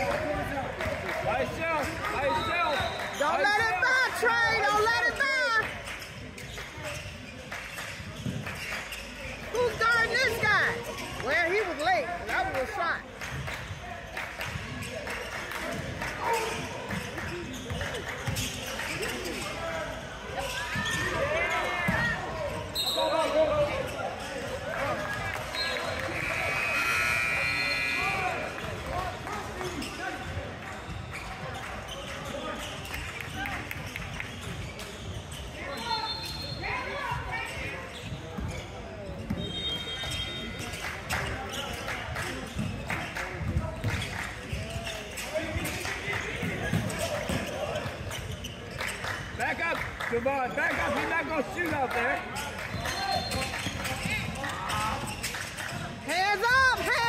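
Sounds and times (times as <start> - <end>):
sneakers squeaking: 0.1 - 49.5, 50.4 - 57.0.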